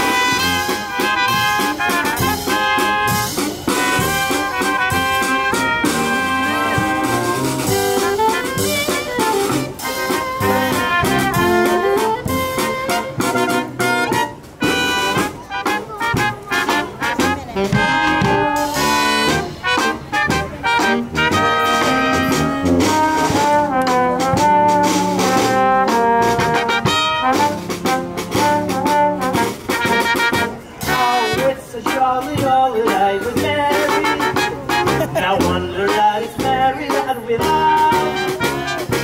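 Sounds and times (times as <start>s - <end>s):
brass band playing jazzy tune: 0.0s - 39.0s
marching bass drum and snare: 0.0s - 39.0s.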